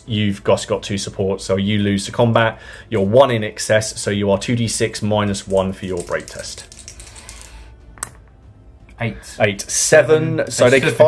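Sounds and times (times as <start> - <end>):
faint background music: 0.0 - 11.0
dice rolling in tray: 5.4 - 7.6
dice click: 5.4 - 8.2.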